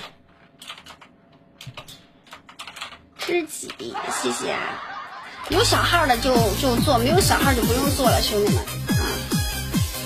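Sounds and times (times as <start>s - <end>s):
computer keyboard keys clicking: 0.0s - 3.8s.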